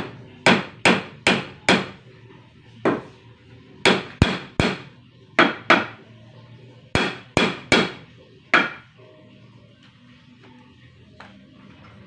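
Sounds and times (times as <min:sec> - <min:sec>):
hammer striking wood: 0:00.4 - 0:02.0, 0:03.8 - 0:06.0, 0:07.0 - 0:08.8.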